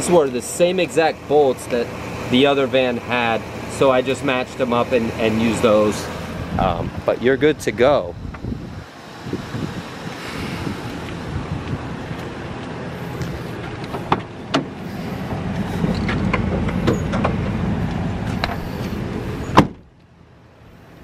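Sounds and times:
steady low rumble: 0:00.0 - 0:21.0
car door slamming shut: 0:19.5 - 0:19.9.

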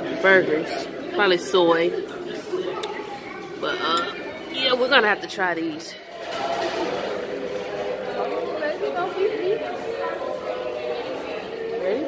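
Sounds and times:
chatter of voices: 0:00.0 - 0:12.0.

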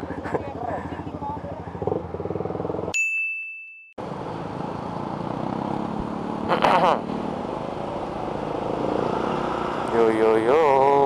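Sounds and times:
motorcycle engine idling: 0:00.0 - 0:02.9
motorcycle riding in traffic: 0:00.0 - 0:03.0, 0:04.0 - 0:11.0
road noise: 0:00.0 - 0:03.0, 0:04.0 - 0:11.0.

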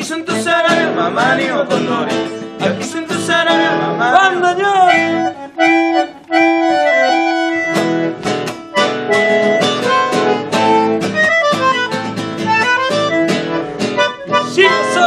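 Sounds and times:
strummed acoustic guitar chords: 0:00.0 - 0:15.0
bandoneon melody: 0:00.5 - 0:15.0.

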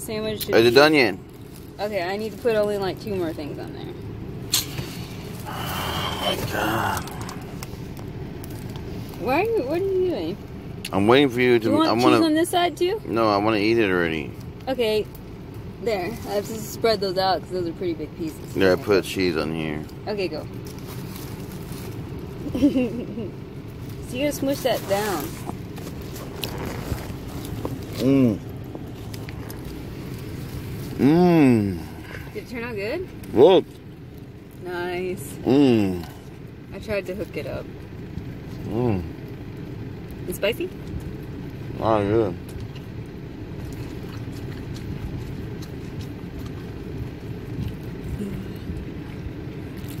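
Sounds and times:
road noise: 0:00.0 - 0:50.0
steady low hum: 0:00.0 - 0:50.0
vehicle engine rumble: 0:00.0 - 0:50.0
bread crackling while handled: 0:19.8 - 0:32.2, 0:42.4 - 0:50.0.

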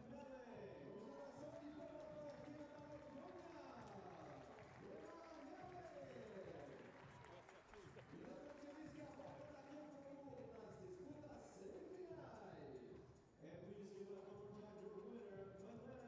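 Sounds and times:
outdoor venue ambience: 0:00.0 - 0:16.0.

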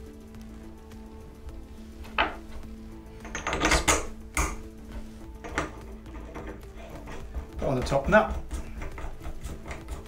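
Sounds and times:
soft background music: 0:00.0 - 0:10.0
steel parts clinking and scraping: 0:02.0 - 0:10.0
sharp metallic knocks: 0:05.4 - 0:10.0.

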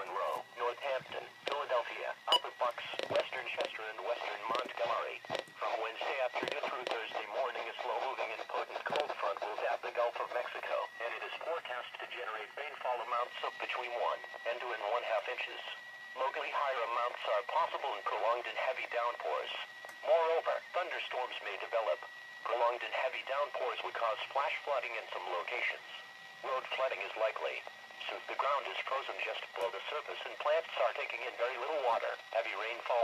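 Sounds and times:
radio broadcast voice: 0:00.0 - 0:33.0.

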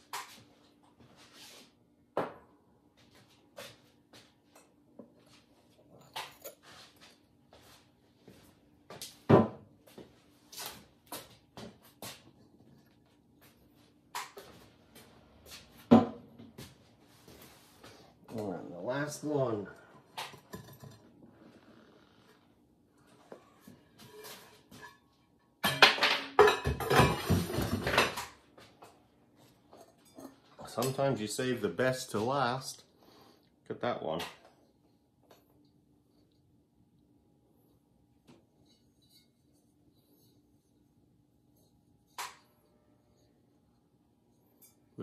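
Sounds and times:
objects clattering and knocking: 0:20.0 - 0:21.4, 0:23.3 - 0:29.0
pottery scraping and clinking: 0:23.4 - 0:25.3, 0:38.5 - 0:40.4.

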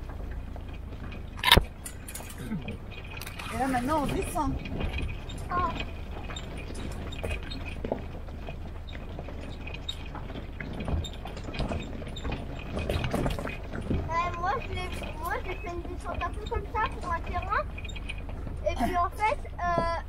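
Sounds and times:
jeep engine rumbling: 0:00.0 - 0:20.0
vehicle body knocking and rattling: 0:00.0 - 0:20.0.

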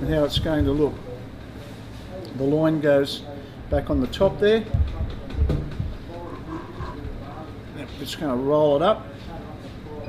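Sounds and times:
background talk: 0:00.0 - 0:10.0
low knock: 0:00.1 - 0:00.9, 0:04.7 - 0:06.2
man murmuring: 0:05.9 - 0:07.4.

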